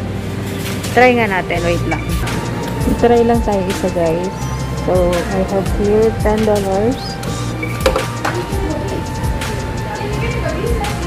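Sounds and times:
electronic machine music: 1.3 - 11.0.

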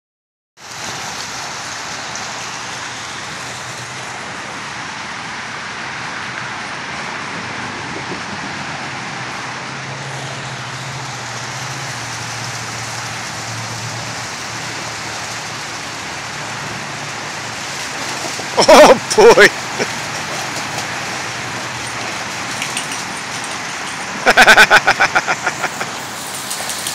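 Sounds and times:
pond waterfall splashing: 0.6 - 26.9.

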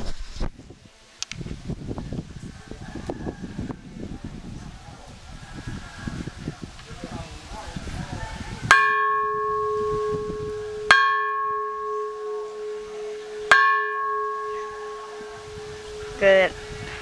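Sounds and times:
bronze bell struck with wooden striker: 8.7 - 16.2.

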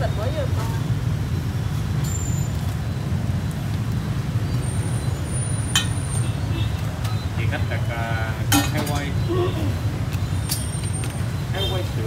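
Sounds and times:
voices: 0.0 - 1.0, 6.5 - 12.0
motor traffic rumble: 0.0 - 12.0.

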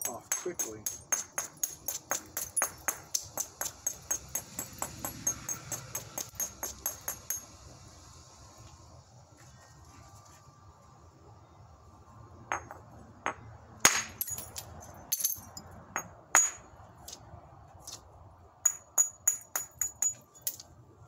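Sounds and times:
hammerstone striking stone: 0.0 - 7.5, 12.5 - 14.6, 16.0 - 16.6, 18.6 - 20.6.

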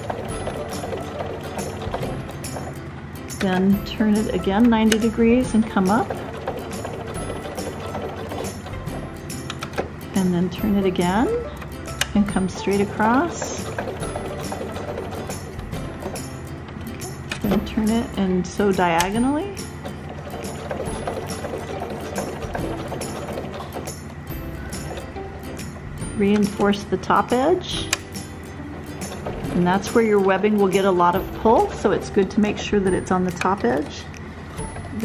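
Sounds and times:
sewing machine running: 0.0 - 16.6, 17.2 - 25.8, 26.4 - 34.0
background music: 0.0 - 35.0
needle mechanism clicking rapidly: 3.4 - 9.9, 10.8 - 16.3, 16.9 - 25.2.

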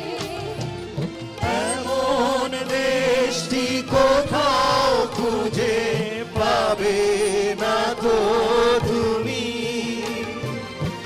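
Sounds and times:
group singing in chorus: 0.0 - 11.0
live band accompaniment: 0.0 - 11.0.

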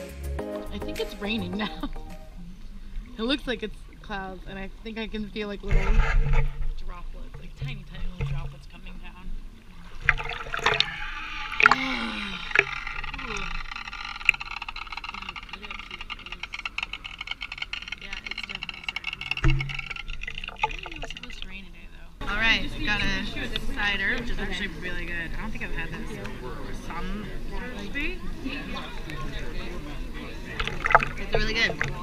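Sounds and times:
water sloshing and splashing: 1.0 - 32.0
voices of bathers: 14.9 - 32.0.

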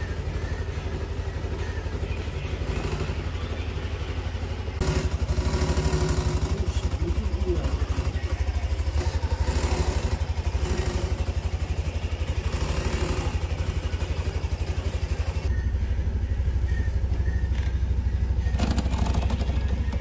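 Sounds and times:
scooter engine idling: 0.0 - 20.0.

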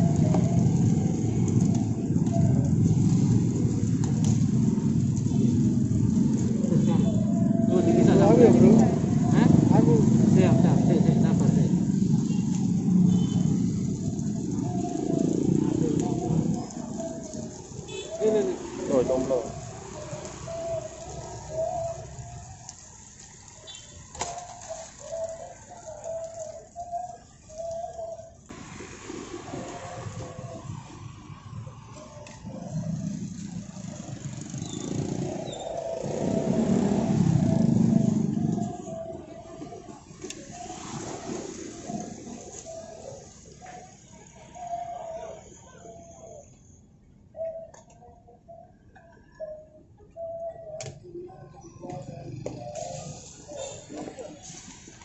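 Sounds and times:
vehicle passing close by: 0.0 - 23.5, 28.5 - 43.6
street traffic: 0.0 - 55.0.

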